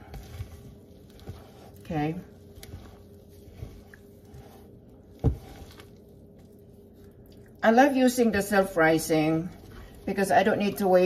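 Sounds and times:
soft thuds pressing dough: 0.0 - 6.6
hand squishing wet dough: 0.0 - 11.0.

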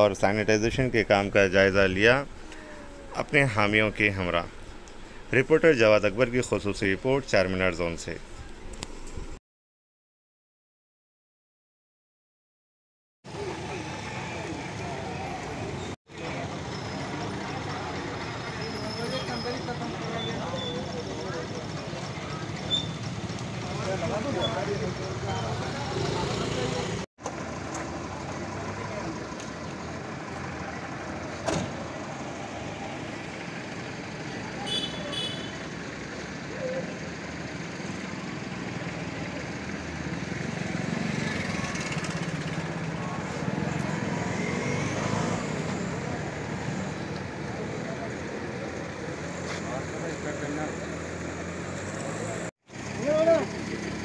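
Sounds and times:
street noise: 0.0 - 9.4, 13.2 - 54.0
voices in background: 13.3 - 23.0
vehicle engine running: 19.6 - 44.2.

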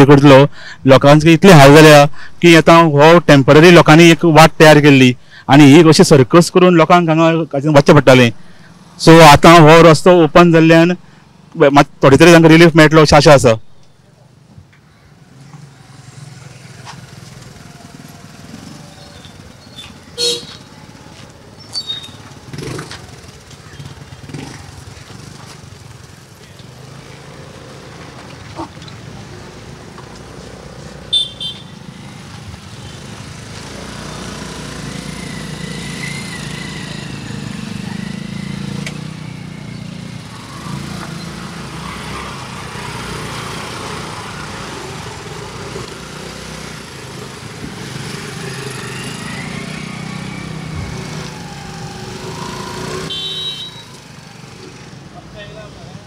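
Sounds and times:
motor scooters passing: 8.1 - 11.6, 14.2 - 56.0.

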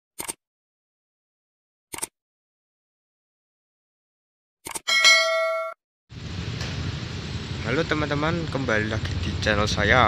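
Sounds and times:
bright bell-like ding: 4.9 - 5.8
outdoor background rumble: 6.1 - 10.0.

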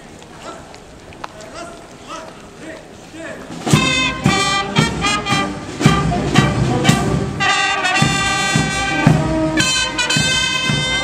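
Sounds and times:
marching drum beats: 3.4 - 11.0
brass playing a tune: 3.6 - 11.0.

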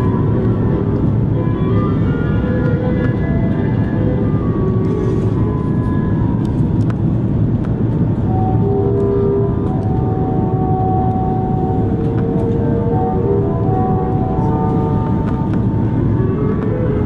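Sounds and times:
airliner cabin rumble: 0.0 - 17.0.

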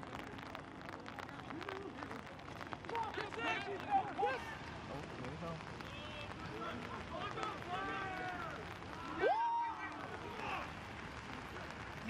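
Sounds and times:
outdoor background noise: 0.0 - 12.0
distant shouts of players: 5.8 - 11.3.

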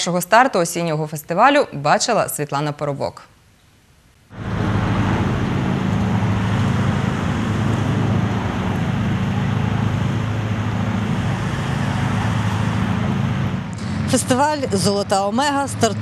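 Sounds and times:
inflator fan engine hum: 4.3 - 16.0
rushing air hiss: 4.4 - 14.1.

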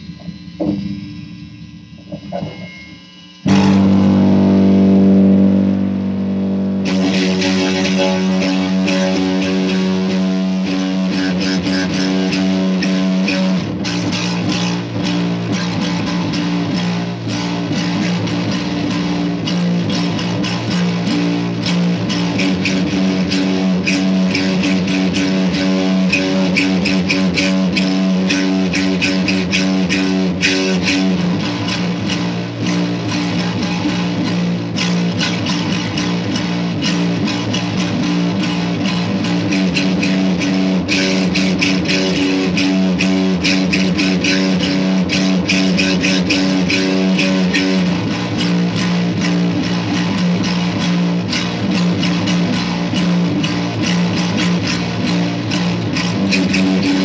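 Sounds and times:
electric bass guitar riff: 0.0 - 57.0.

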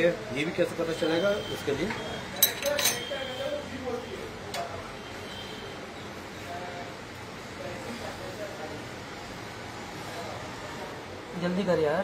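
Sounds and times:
short metallic clinks: 2.4 - 3.2.

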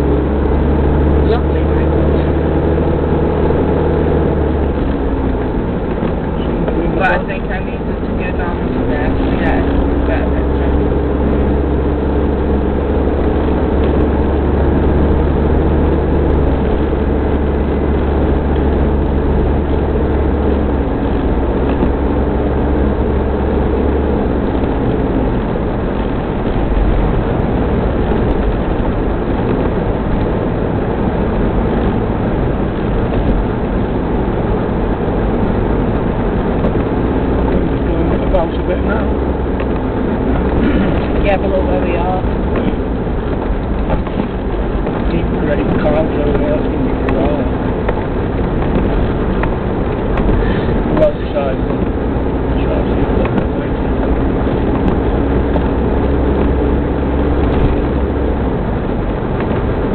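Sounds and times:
car engine and tyre noise: 0.0 - 59.9.

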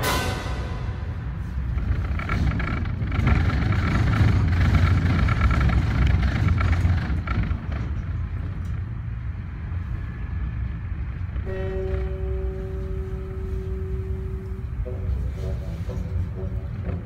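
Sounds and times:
cable car low rumble: 0.0 - 17.0
faint whine: 9.9 - 16.7.

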